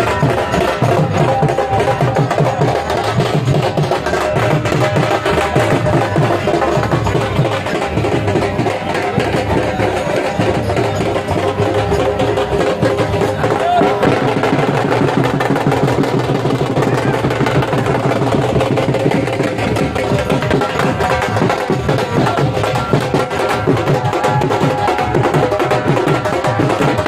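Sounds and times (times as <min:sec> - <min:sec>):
crowd voices: 0:00.0 - 0:27.0
drum-led folk music: 0:00.0 - 0:27.0.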